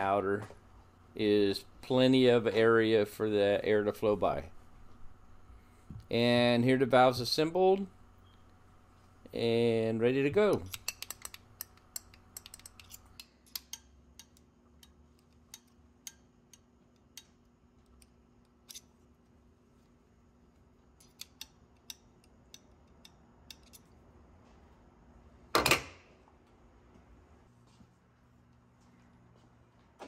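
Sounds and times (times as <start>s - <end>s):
small metal clicks and taps: 10.6s - 18.8s, 21.0s - 23.9s.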